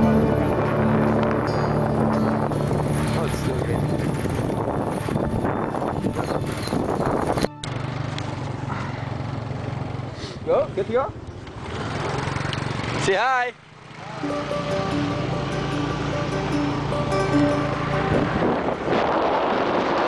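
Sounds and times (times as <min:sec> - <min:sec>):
wind noise on microphone: 0:00.0 - 0:07.6, 0:17.8 - 0:20.0
background music: 0:00.0 - 0:08.4, 0:14.2 - 0:19.1
low engine hum: 0:00.0 - 0:10.2, 0:14.2 - 0:20.0
small motorbike engine running: 0:01.1 - 0:10.2, 0:11.2 - 0:13.1.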